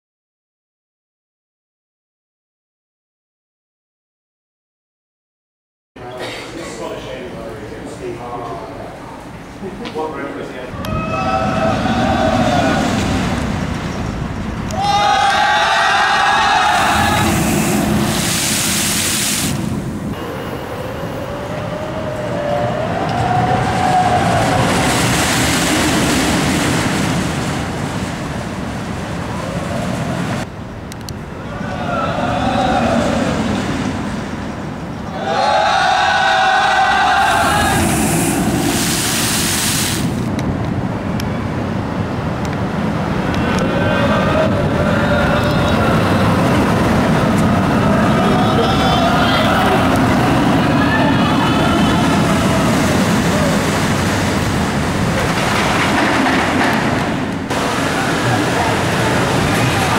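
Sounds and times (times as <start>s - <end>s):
roller coaster rolling roar: 6.5s - 59.9s.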